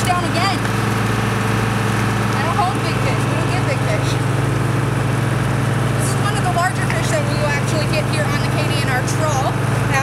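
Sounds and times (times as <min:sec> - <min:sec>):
ship engine droning: 0:00.0 - 0:10.0.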